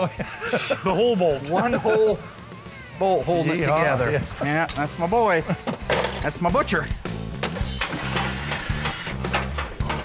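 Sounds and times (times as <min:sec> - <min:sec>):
background music with bass line: 0:01.5 - 0:10.0
cordless drill running: 0:07.8 - 0:09.2.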